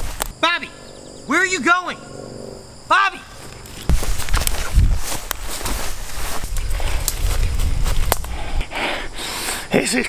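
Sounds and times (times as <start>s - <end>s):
low rumble: 0.7s - 2.9s
footsteps in grass: 3.3s - 8.4s.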